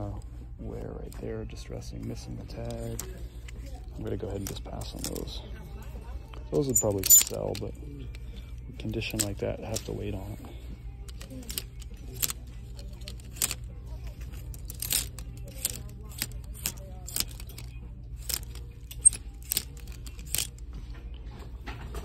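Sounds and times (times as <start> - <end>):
hangers clicking on metal rail: 11.1 - 20.6.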